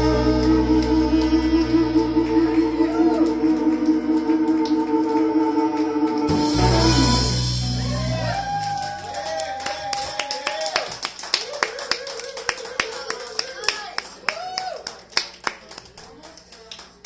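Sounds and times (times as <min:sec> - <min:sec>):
audience applauding: 0:00.0 - 0:07.0, 0:07.8 - 0:17.0
people cheering: 0:00.0 - 0:16.8.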